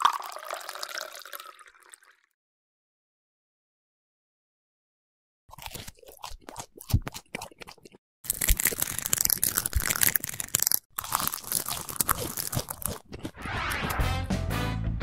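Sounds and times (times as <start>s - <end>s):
food crunching being chewed: 5.5s - 13.4s
music: 13.4s - 15.0s.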